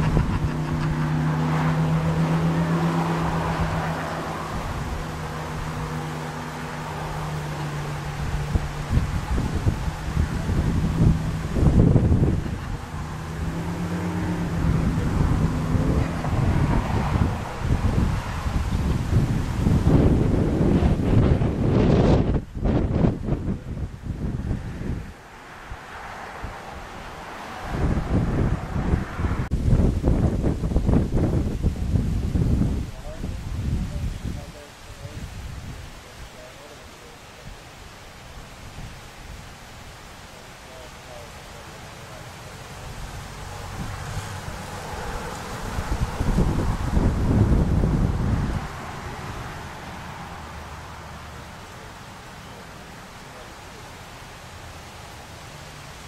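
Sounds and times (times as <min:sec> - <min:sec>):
wind gusting on microphone: 0:00.0 - 0:56.0.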